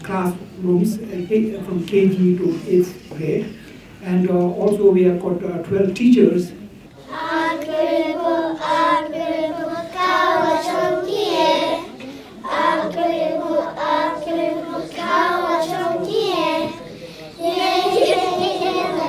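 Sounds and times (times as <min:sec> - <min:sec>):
young children singing: 0:07.0 - 0:19.0.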